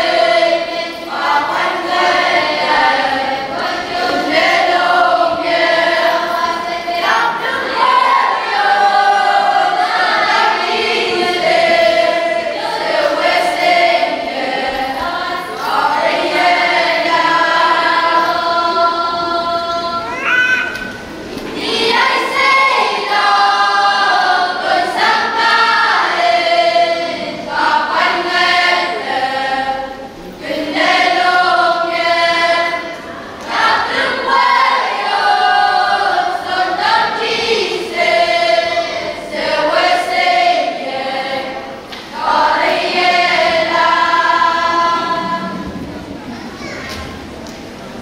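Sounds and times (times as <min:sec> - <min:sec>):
children's choir singing: 0:00.0 - 0:48.0.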